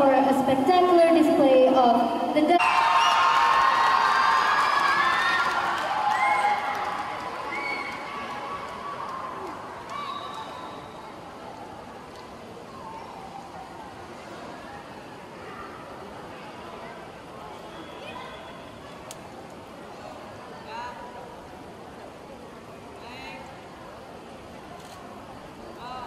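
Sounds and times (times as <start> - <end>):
crowd cheering and shouting: 2.4 - 10.9.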